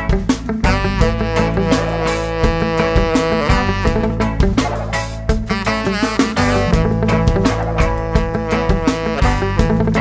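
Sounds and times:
drum hits: 0.0s - 9.8s
reggae band playing: 0.0s - 10.0s.

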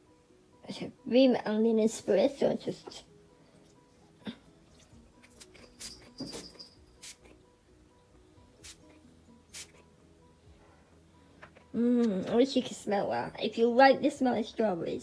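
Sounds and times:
faint background music: 0.0s - 15.0s
spray bottle hissing spritzes: 7.0s - 7.2s, 8.6s - 8.8s, 9.5s - 9.8s.

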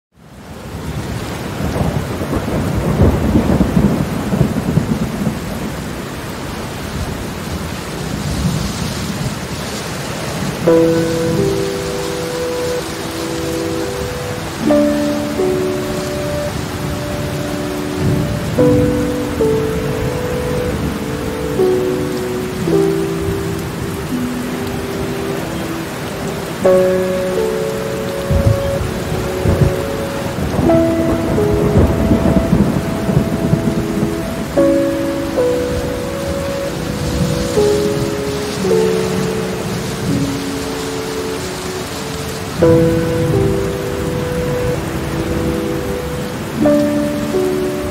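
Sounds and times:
steady rain: 0.1s - 47.9s
thunder rumbling: 0.8s - 47.9s.

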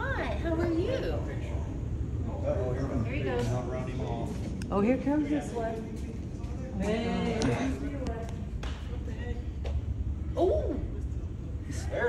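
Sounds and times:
murmur of onlookers: 4.2s - 9.6s.

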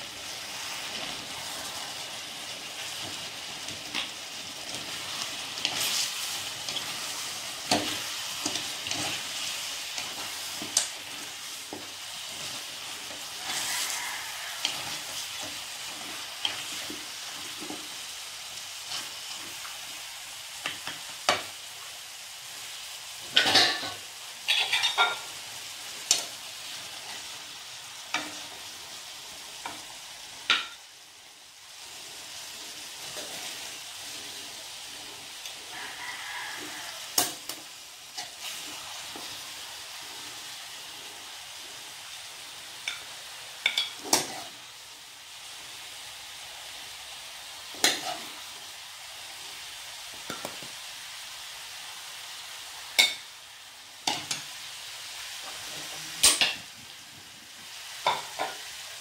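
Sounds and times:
meat sizzling in a wok: 0.0s - 59.0s
tongs and spoon scraping a pan: 0.6s - 18.0s, 23.3s - 25.4s, 32.0s - 40.4s, 42.8s - 44.7s, 47.7s - 48.5s, 52.9s - 53.3s.

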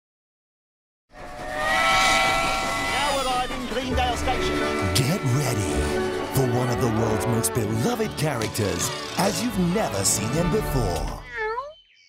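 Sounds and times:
steam locomotive whistle: 1.2s - 8.1s.

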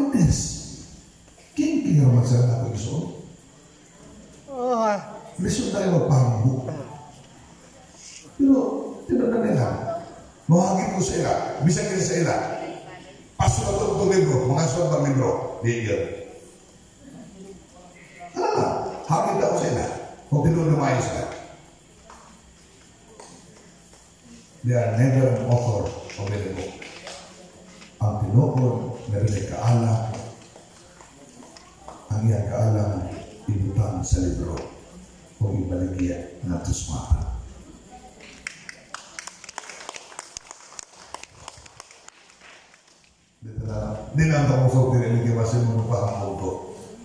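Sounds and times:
scattered applause: 25.4s - 27.9s, 38.2s - 43.2s
man speaking over loudspeaker: 43.4s - 46.8s.

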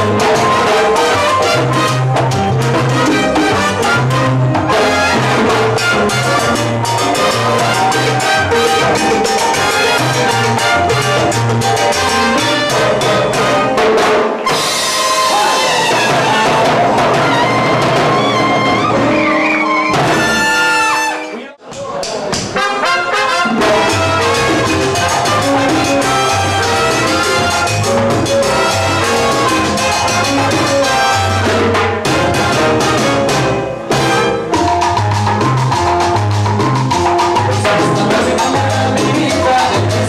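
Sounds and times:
horns holding notes: 0.0s - 13.8s, 14.4s - 21.6s, 22.6s - 34.8s
salsa band playing: 0.0s - 40.0s
short repeated horn notes: 18.6s - 21.5s, 22.6s - 31.7s.

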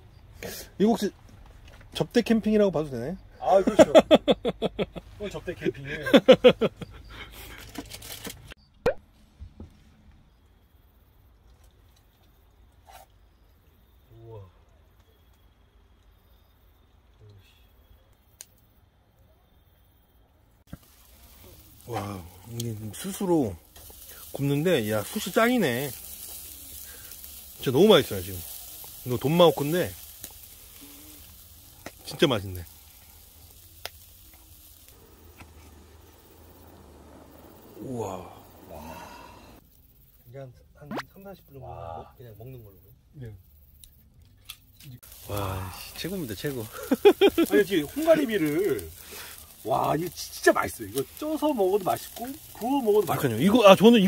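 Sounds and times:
pop sound effect: 8.8s - 9.0s
meat sizzling on a grill: 20.6s - 40.2s, 44.4s - 54.0s.

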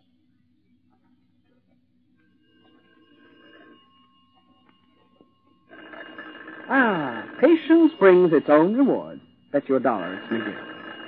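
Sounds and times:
telephone ringing: 2.3s - 11.0s.

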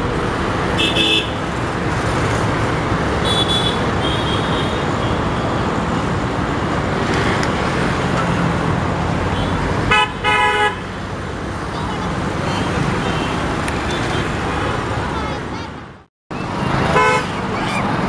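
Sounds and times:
steady traffic noise: 0.0s - 18.0s
vehicle horn toots: 0.8s - 1.4s, 16.9s - 17.3s.

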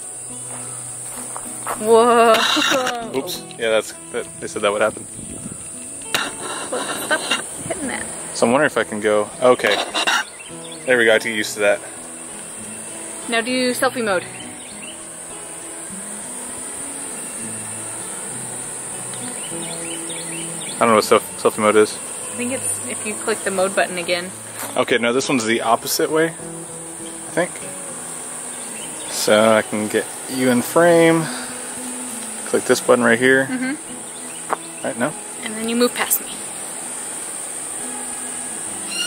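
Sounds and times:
insects droning: 0.0s - 39.0s.

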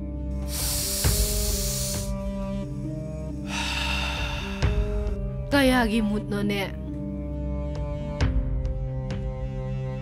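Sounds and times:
background music sustained notes: 0.0s - 10.0s
man exhaling breath: 0.4s - 2.3s, 3.3s - 5.1s.

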